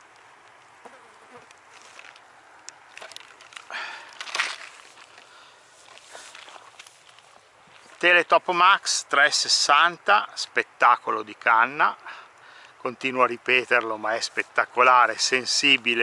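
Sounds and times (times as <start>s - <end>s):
rustling on grass: 0.0s - 8.8s.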